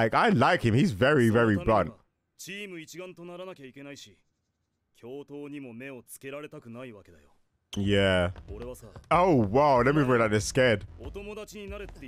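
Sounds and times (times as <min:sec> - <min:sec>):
man speaking: 0:00.0 - 0:04.2, 0:05.0 - 0:11.3.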